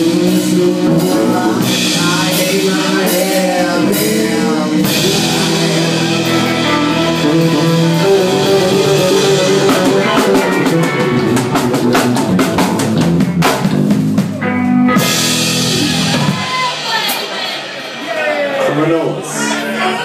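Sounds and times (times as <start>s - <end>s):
rock band playing instrumental: 0.0s - 20.0s
rapid drum hits: 0.1s - 14.4s.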